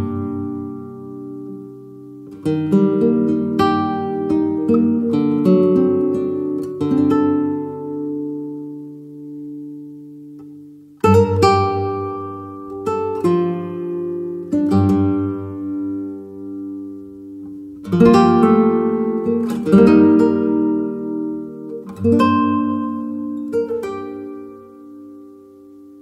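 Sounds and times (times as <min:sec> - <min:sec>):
acoustic guitar chords: 0:00.0 - 0:26.0.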